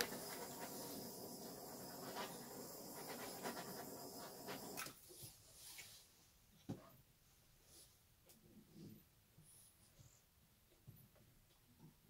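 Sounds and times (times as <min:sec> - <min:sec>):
torch flame hissing: 0:00.0 - 0:04.8.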